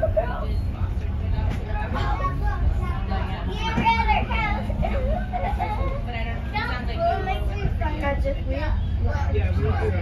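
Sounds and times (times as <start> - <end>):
train rumbling: 0.0 - 10.0.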